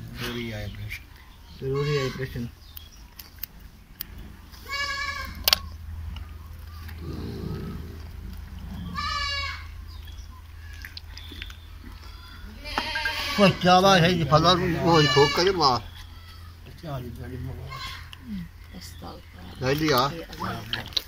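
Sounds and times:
goats bleating: 1.6 - 2.5, 4.6 - 5.5, 8.8 - 9.8, 11.8 - 16.9, 17.5 - 18.3.

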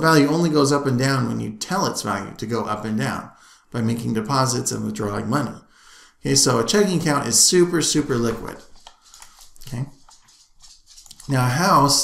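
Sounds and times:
man speaking: 0.0 - 8.8, 9.6 - 10.0, 11.2 - 12.0.

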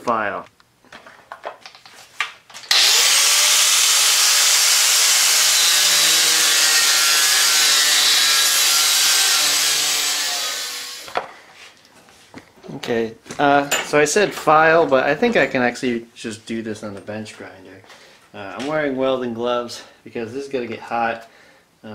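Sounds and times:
angle grinder cutting steel: 2.7 - 11.2.

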